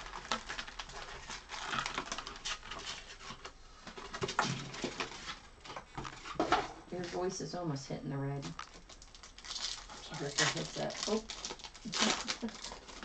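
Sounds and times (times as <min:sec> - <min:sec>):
foil card packs crinkling: 0:00.0 - 0:07.2, 0:08.4 - 0:13.0.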